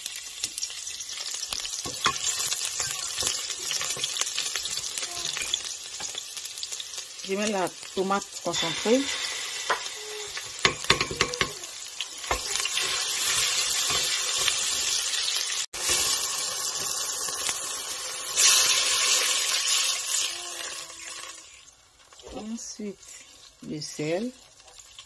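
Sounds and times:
onions sizzling in hot oil: 0.0 - 25.0.

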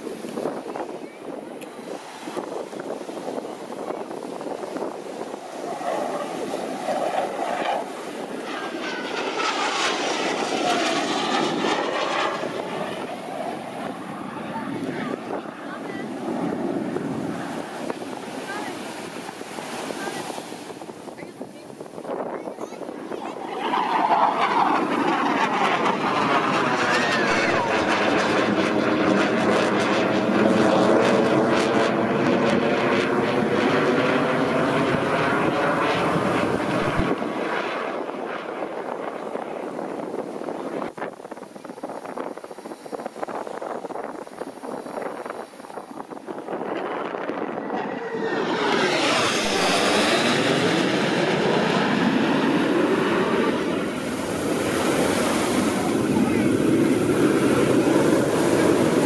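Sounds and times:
jet flying overhead: 0.0 - 59.0.

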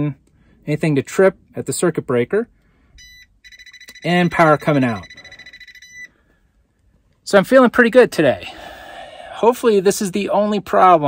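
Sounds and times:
voltage detector beeping: 3.0 - 6.1.

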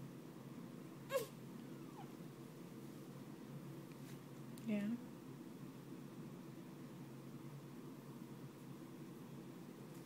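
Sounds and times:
baby whimpering: 1.1 - 2.2
newborn baby crying: 1.1 - 2.2.

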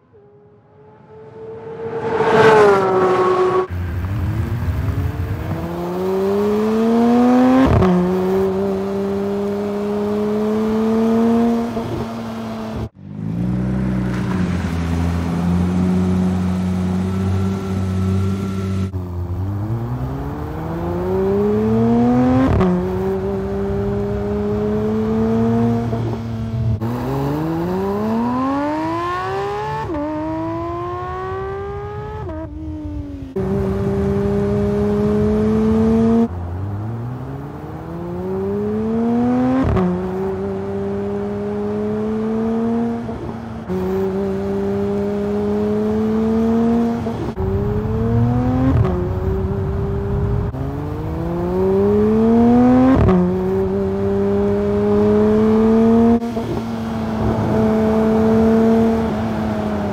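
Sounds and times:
car engine accelerating hard: 0.6 - 59.9.

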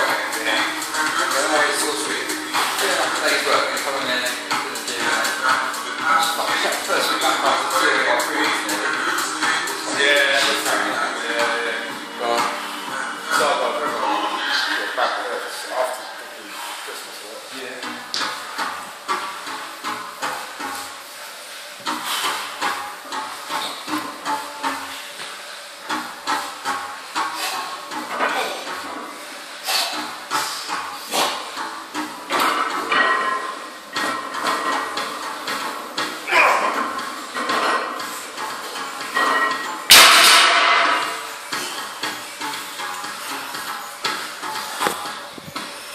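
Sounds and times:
barbell plates crashing on floor: 39.2 - 41.3.

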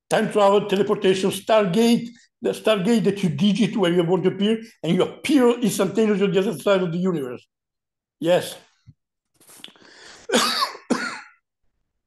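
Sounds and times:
faint breath in: 9.6 - 10.3
man coughing: 10.3 - 11.4.

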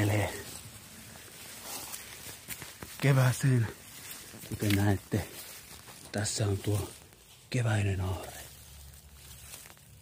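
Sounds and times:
footsteps in dry leaves: 0.0 - 10.0.

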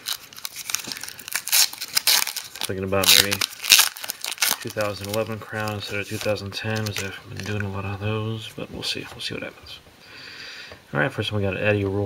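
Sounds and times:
foil wrapper tearing and crinkling: 0.0 - 7.7.

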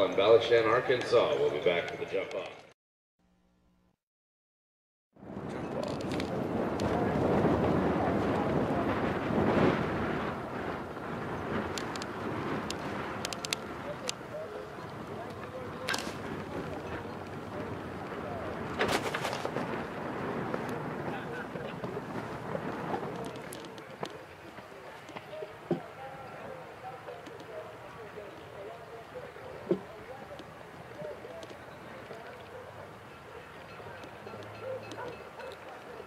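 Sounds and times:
wind buffeting microphone: 5.2 - 36.0
murmur of distant voices: 5.3 - 36.0.

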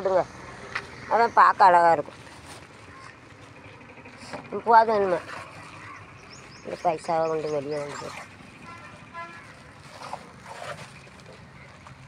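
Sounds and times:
distant vehicle horn toots: 8.6 - 9.7.

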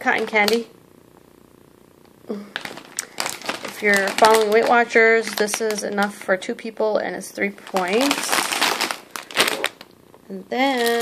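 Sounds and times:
plastic snack bags crinkling: 2.3 - 9.9, 10.6 - 11.0.

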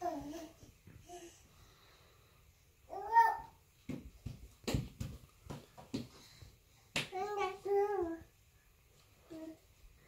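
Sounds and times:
baby's hands slapping wooden floor: 3.9 - 6.3, 6.9 - 7.4.

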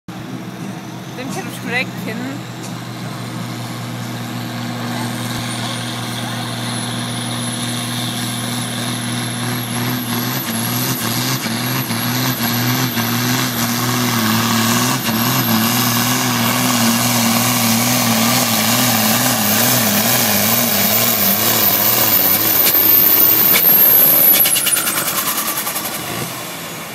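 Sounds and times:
tractor diesel engine under load: 0.1 - 26.9
turbo whistle: 19.1 - 26.2.

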